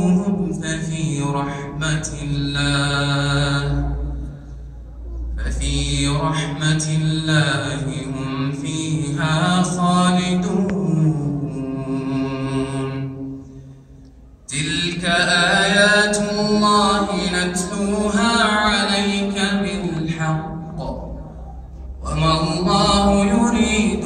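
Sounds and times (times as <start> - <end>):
man reciting melodically: 0.0 - 4.6, 5.2 - 13.6, 14.4 - 24.0.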